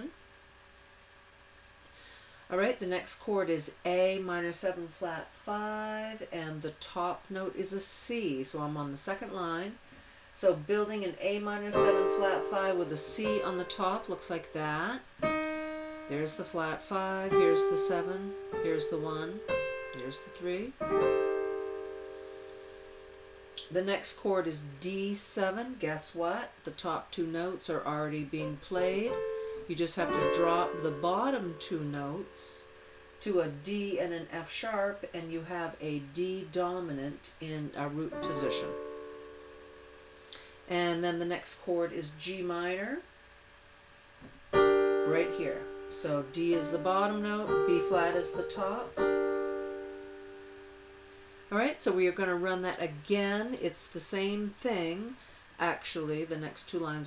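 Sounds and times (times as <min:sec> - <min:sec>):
digital piano chord ringing: 0:11.7 - 0:24.1, 0:28.3 - 0:33.7, 0:38.1 - 0:40.7, 0:44.5 - 0:51.8.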